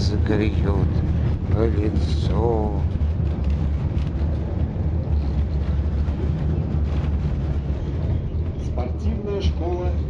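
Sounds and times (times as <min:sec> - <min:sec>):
vehicle cabin rumble: 0:00.0 - 0:10.0.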